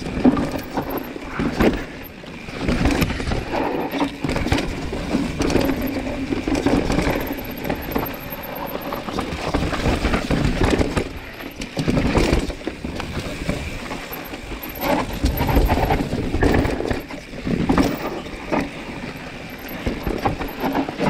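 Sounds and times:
bike knocking and rattling on rocks: 0.0s - 21.0s
bike tyre and trail noise: 0.0s - 21.0s.

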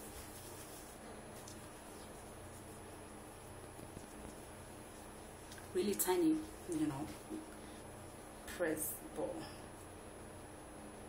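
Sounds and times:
soft ticks from handling hair: 1.4s - 2.8s, 3.6s - 7.6s.

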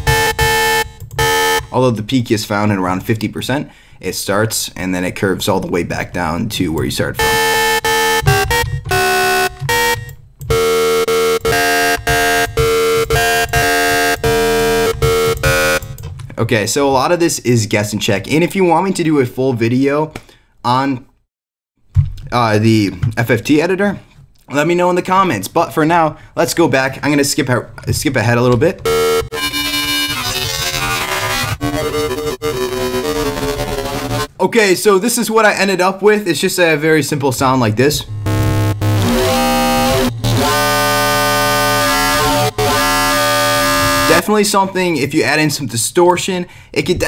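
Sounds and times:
buzzy synth tone repeated notes: 0.0s - 1.8s, 7.0s - 16.0s, 28.8s - 34.3s, 37.4s - 44.2s.

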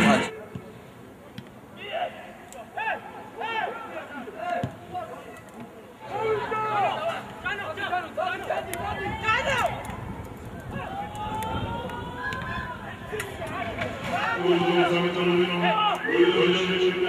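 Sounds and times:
men shouting and calling out: 1.8s - 5.4s, 6.0s - 9.8s, 10.7s - 17.0s.

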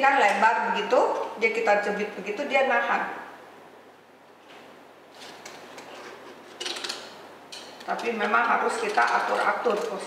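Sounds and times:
plastic straws rustling and clicking: 5.2s - 10.0s.

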